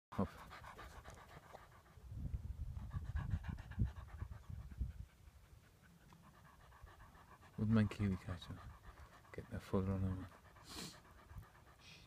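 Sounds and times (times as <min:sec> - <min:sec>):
dog panting: 0:00.1 - 0:02.1, 0:02.7 - 0:12.0.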